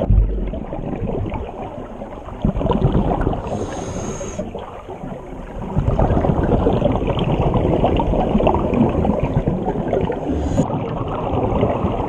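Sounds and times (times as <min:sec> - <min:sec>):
exhaled bubbles underwater: 0:00.0 - 0:12.0
regulator hiss: 0:03.4 - 0:04.4.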